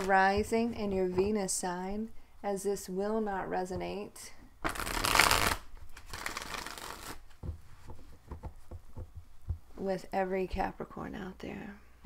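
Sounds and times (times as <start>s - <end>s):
cards shuffling: 4.6s - 7.4s.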